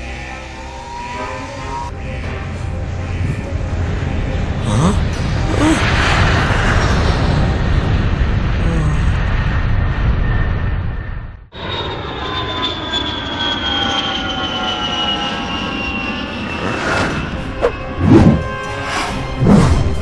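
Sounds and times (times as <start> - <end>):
loud rumbling noise: 0.0 - 11.5
steady engine-like drone: 0.0 - 20.0.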